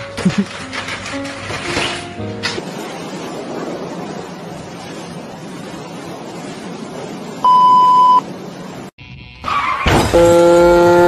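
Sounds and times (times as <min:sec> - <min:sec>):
short high beep: 0:07.5 - 0:08.2.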